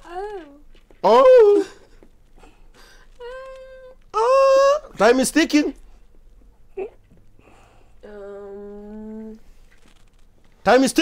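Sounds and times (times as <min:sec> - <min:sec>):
person humming: 0:08.0 - 0:09.4.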